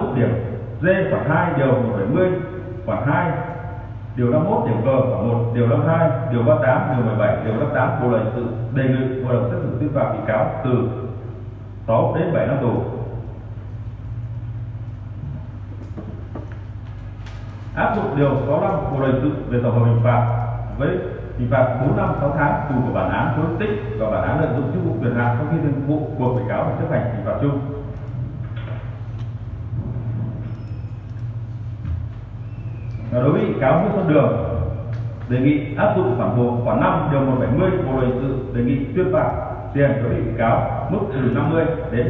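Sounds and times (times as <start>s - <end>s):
low room hum: 0.0s - 42.0s.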